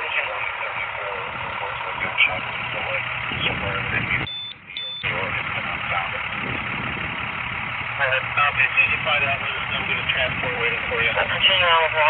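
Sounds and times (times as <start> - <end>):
people talking: 0.0 - 6.6, 8.0 - 12.0
low engine hum: 0.0 - 12.0
short high beeps: 4.3 - 5.1.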